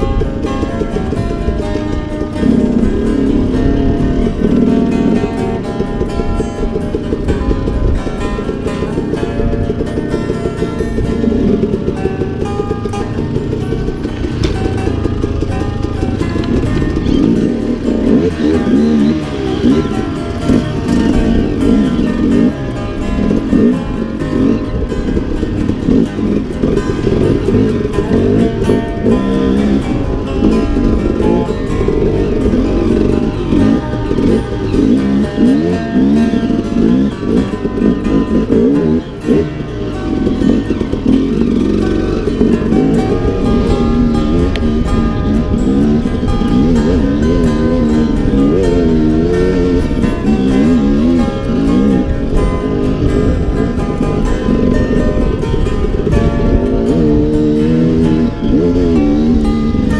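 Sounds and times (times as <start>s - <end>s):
background guitar music: 0.0s - 59.9s
dirt bike engine revving: 0.0s - 59.9s.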